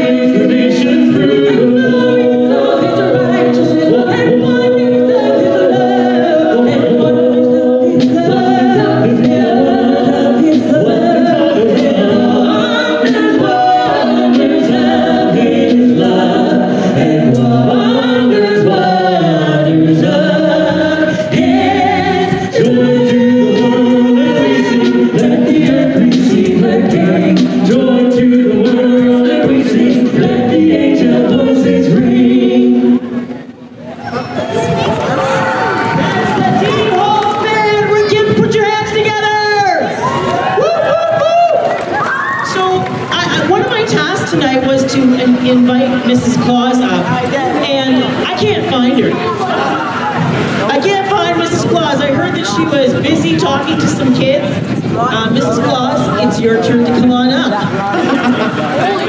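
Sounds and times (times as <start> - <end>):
a cappella group singing: 0.0 - 33.9, 34.6 - 59.0.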